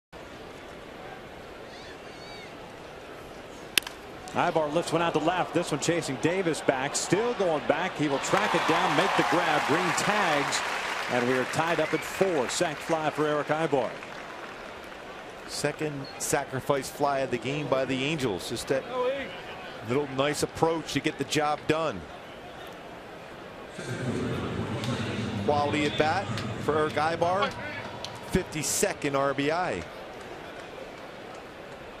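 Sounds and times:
ballpark crowd noise: 0:00.1 - 0:32.0
faint high calls: 0:01.6 - 0:02.6
crowd murmur: 0:23.6 - 0:32.0.

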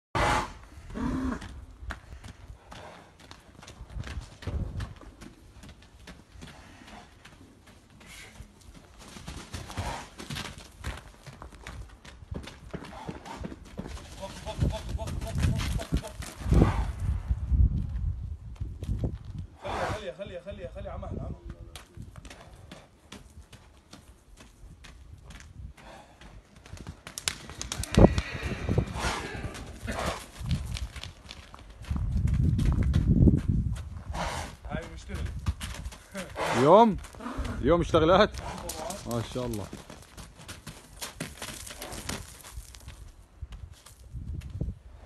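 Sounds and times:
hooves on gravel: 0:00.7 - 0:17.2, 0:17.8 - 0:19.5, 0:21.1 - 0:45.0.

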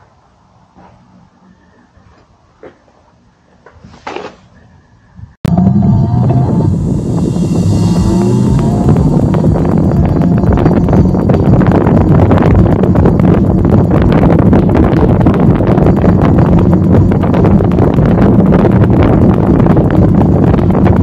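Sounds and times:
road and tyre noise: 0:00.0 - 0:04.8, 0:05.4 - 0:21.0
wind buffeting microphone: 0:05.2 - 0:21.0
electric motor whine: 0:05.5 - 0:21.0.

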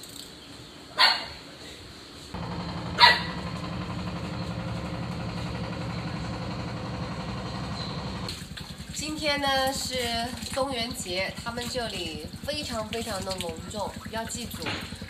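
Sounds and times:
small engine humming: 0:02.4 - 0:15.0.

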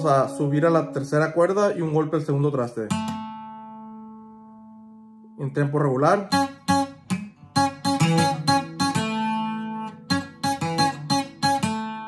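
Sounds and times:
acoustic guitar lead: 0:00.0 - 0:12.0.

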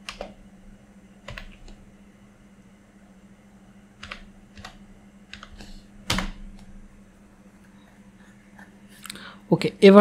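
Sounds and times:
computer keyboard typing: 0:01.2 - 0:01.8, 0:04.0 - 0:06.3.

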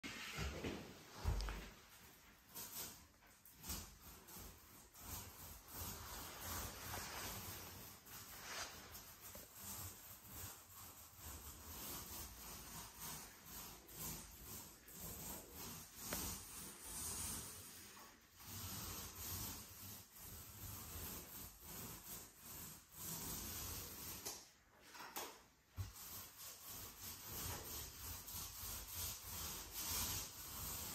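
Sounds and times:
paint roller rubbing on wall: 0:00.0 - 0:30.9.

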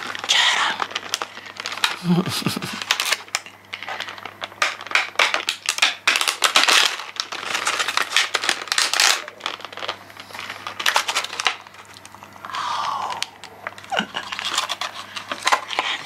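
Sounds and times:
plastic pack crinkling: 0:00.0 - 0:16.0.

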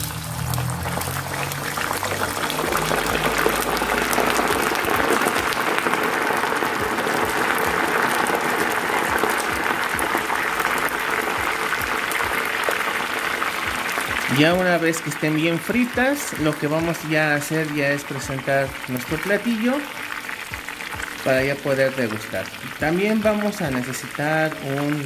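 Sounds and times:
fries sizzling in hot oil: 0:00.0 - 0:25.0.

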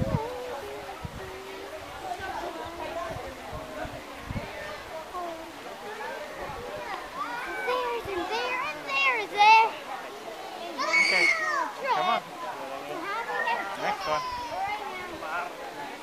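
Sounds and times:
children calling and squealing: 0:00.0 - 0:15.3.

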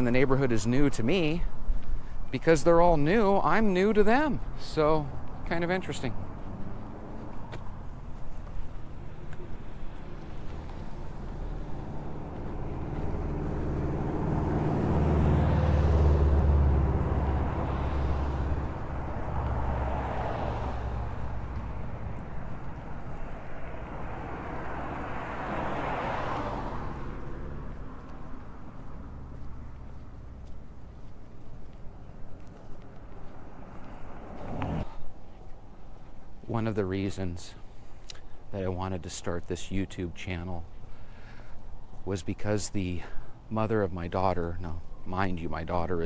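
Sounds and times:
road noise: 0:00.0 - 0:46.0
street noise: 0:00.0 - 0:46.0
vehicle engine passing by: 0:05.0 - 0:36.2.

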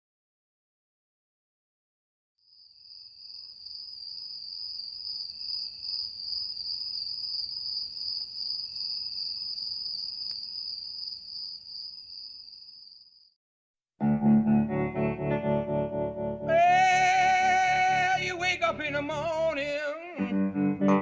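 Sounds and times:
crickets chirring: 0:02.5 - 0:13.4.

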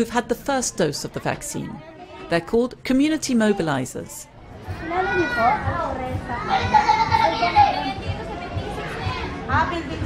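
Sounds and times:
women talking: 0:00.0 - 0:04.2
children's voices: 0:01.6 - 0:02.5, 0:03.3 - 0:09.8.

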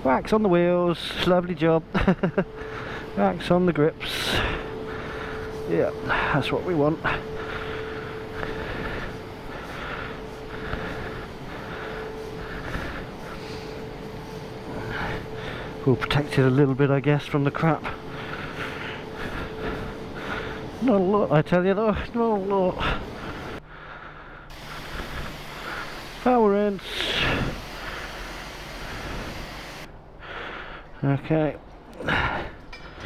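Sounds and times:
steady hum: 0:00.0 - 0:33.0
pressure washer spraying water: 0:24.5 - 0:29.9.

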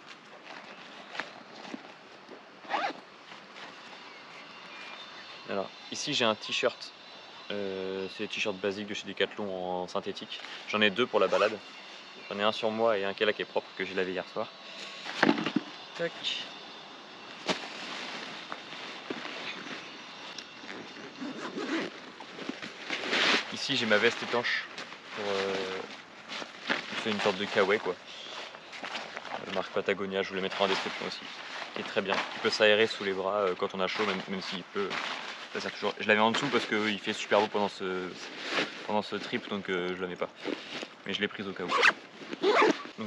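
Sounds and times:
zipper being pulled: 0:02.6 - 0:03.0, 0:20.6 - 0:22.0, 0:41.6 - 0:43.0.

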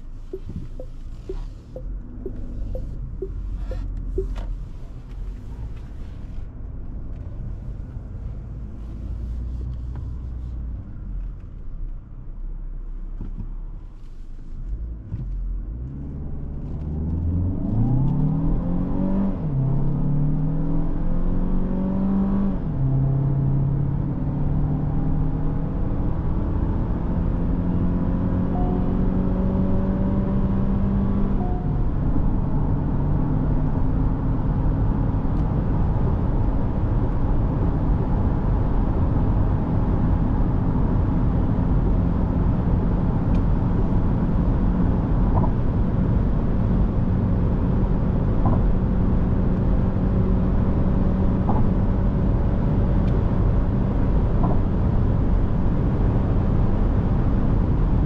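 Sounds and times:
car engine accelerating: 0:00.0 - 0:10.3, 0:15.0 - 0:58.0.

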